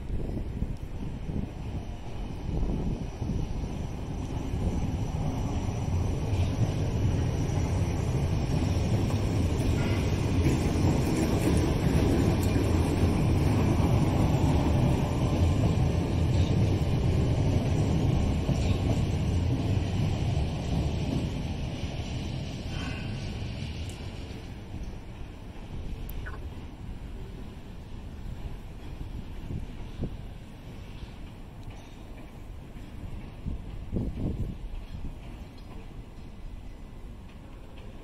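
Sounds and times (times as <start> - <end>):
train rumbling past on rails: 0.0 - 38.0.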